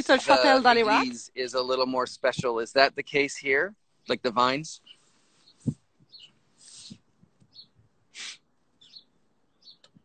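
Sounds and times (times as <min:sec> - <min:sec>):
high bird chirps: 0:04.1 - 0:10.0
short hiss: 0:06.6 - 0:07.0, 0:08.1 - 0:08.4.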